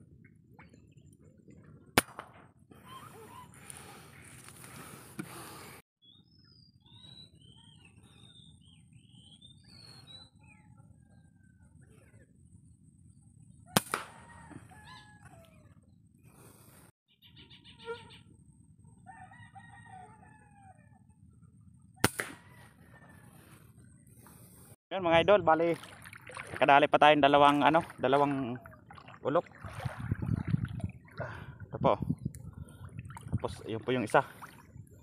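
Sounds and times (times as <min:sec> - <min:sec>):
marsh birds chirping: 0:06.0 - 0:13.8, 0:14.8 - 0:19.0.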